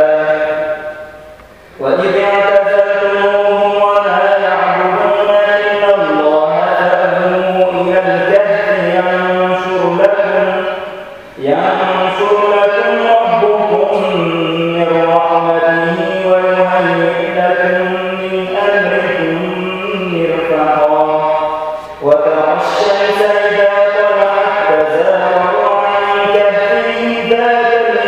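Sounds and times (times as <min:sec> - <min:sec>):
man chanting melodically: 0:00.0 - 0:28.0.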